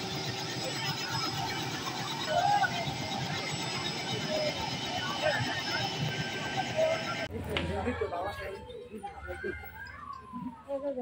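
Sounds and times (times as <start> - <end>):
helicopter running: 0.0 - 7.3.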